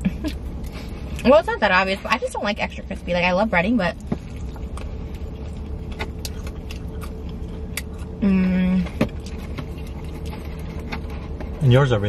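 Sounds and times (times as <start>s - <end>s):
car cabin hum: 0.0s - 12.0s
people eating crunchy food: 3.9s - 11.8s.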